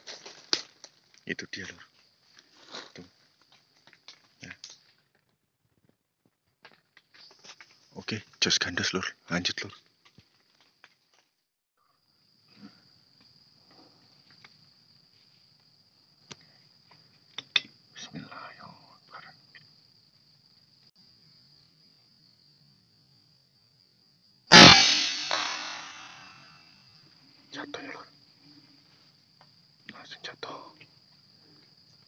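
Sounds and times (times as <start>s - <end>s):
high insect drone: 11.8s - 32.0s
air rifle shot: 24.5s - 26.4s.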